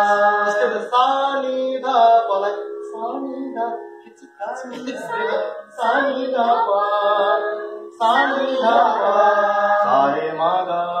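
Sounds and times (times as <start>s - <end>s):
group singing held notes: 0.0s - 0.9s, 4.9s - 11.0s.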